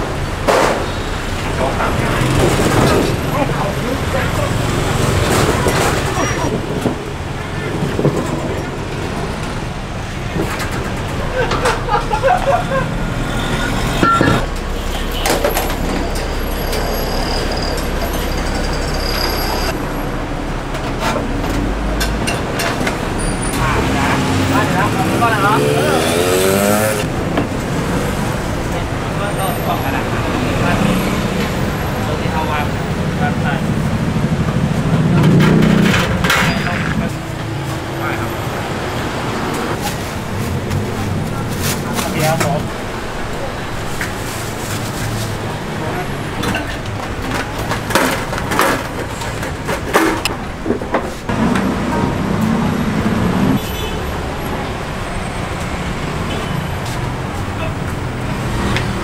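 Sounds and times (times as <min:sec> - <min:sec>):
low rumble of traffic engines: 0:00.0 - 0:59.0
vehicle engine accelerating: 0:01.2 - 0:47.7, 0:51.3 - 0:59.0.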